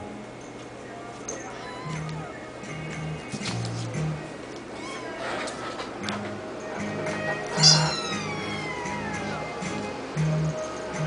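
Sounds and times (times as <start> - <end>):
kitten meowing: 1.5 - 2.3, 4.8 - 5.2, 7.5 - 9.5
background music with bass line: 1.9 - 4.3, 6.1 - 11.0.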